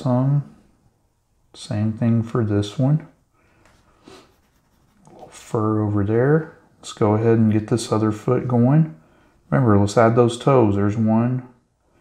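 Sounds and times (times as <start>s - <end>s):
pencil scratching on paper: 4.1s - 5.5s.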